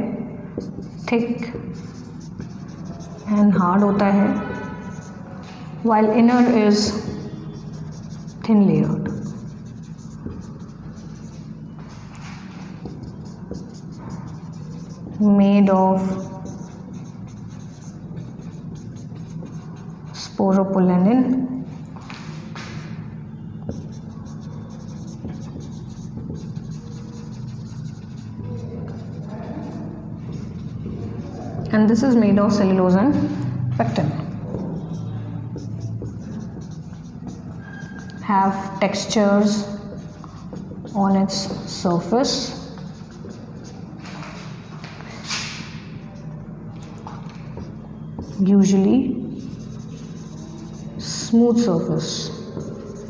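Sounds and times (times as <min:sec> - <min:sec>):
person speaking: 0:00.0 - 0:11.4, 0:23.7 - 0:43.8
marker pen on whiteboard: 0:00.0 - 0:53.0.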